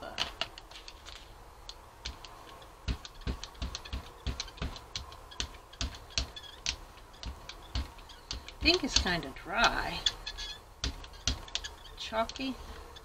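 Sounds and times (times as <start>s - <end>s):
brayer clicking and ticking: 0.3s - 13.0s.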